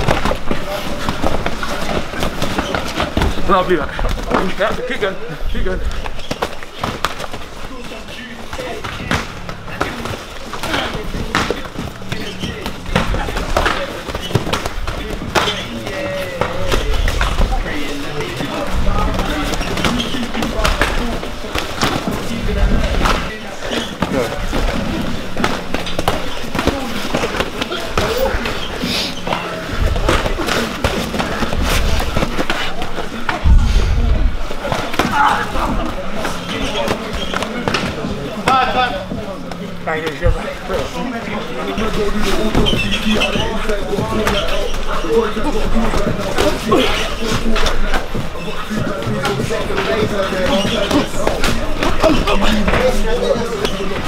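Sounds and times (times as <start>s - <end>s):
indistinct voices: 0.0s - 54.0s
heavy thud: 33.3s - 34.5s.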